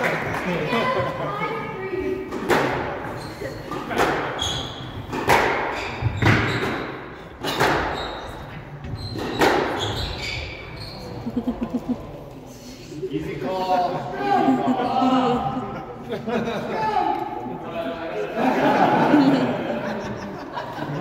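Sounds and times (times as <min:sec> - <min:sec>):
squash racket striking ball: 0:02.3 - 0:03.0, 0:03.7 - 0:08.2, 0:09.0 - 0:10.2
shoes squeaking on hardwood floor: 0:03.0 - 0:11.4.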